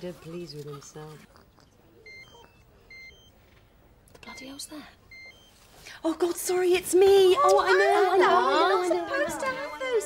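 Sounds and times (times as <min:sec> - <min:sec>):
phone ringtone beeps: 0:02.0 - 0:03.4, 0:04.3 - 0:05.6, 0:09.1 - 0:10.0.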